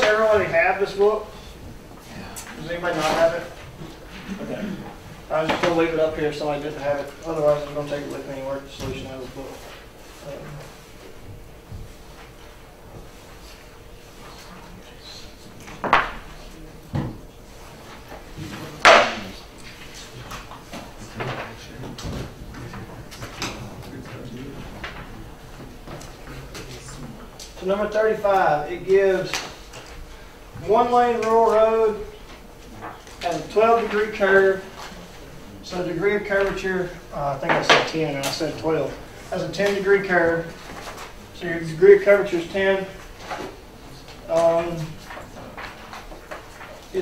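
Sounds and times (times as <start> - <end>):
man speaking: 0.0 - 1.5, 2.1 - 3.6, 4.4 - 10.7, 26.2 - 29.4, 30.6 - 32.2, 32.8 - 34.9, 35.5 - 40.6, 41.4 - 43.0, 44.2 - 45.0
sharp knock: 18.8 - 19.3.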